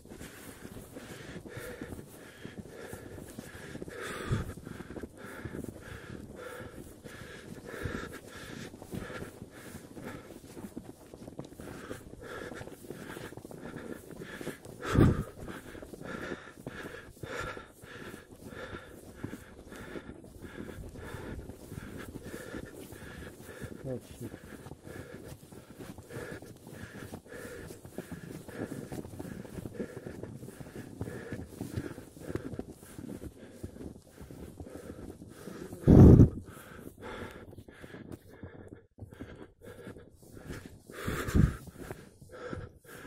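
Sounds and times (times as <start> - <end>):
footsteps in snow: 0.0 - 38.4, 39.3 - 43.0
person panting heavily: 0.0 - 43.0.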